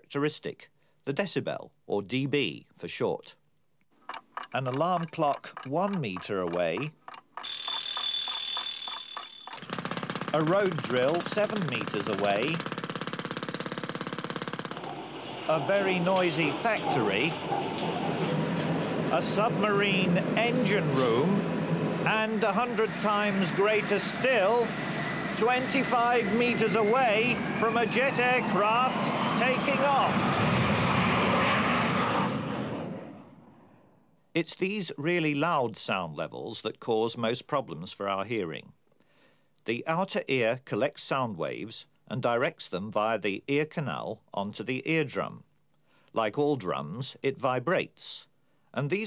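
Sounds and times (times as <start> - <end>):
alarm clock ringing: 7.4 - 12.8
jet airliner taking off: 15.0 - 34.0.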